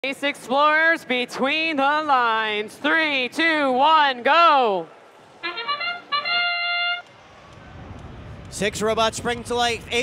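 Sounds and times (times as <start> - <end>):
brass-like fanfare: 5.4 - 7.1.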